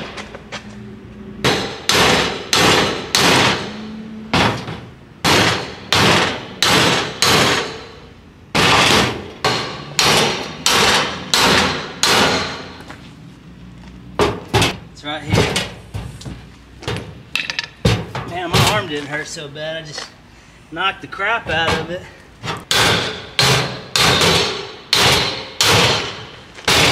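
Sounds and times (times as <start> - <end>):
hammer striking metal pry bar: 1.4 - 12.8, 22.6 - 26.9.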